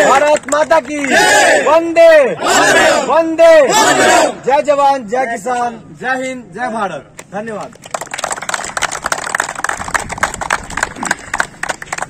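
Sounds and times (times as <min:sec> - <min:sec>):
group applauding: 0:00.0 - 0:01.2, 0:07.7 - 0:12.0.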